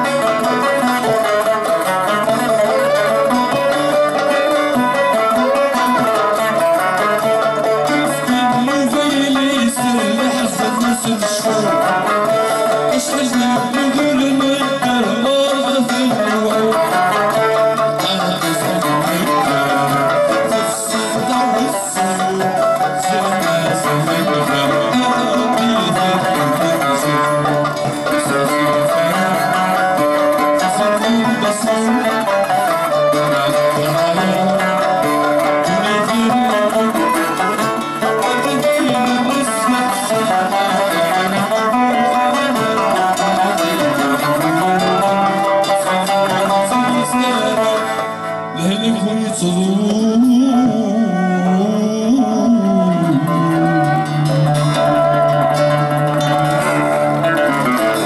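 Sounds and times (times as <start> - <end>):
acoustic guitars: 0.0 - 58.0
banjo: 0.0 - 58.0
mandole: 0.0 - 58.0
violin: 0.0 - 58.0.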